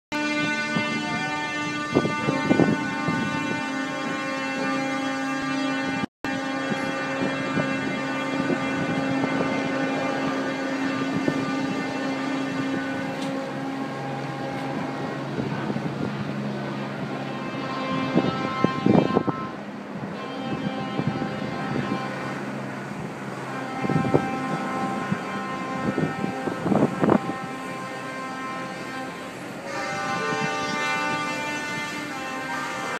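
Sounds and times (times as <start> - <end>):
ship horns blowing: 0.1 - 32.9
wind buffeting microphone: 0.2 - 32.9.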